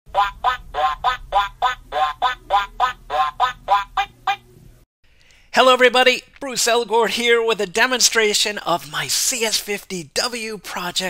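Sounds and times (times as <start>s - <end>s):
duck quacks: 0.1s - 4.4s.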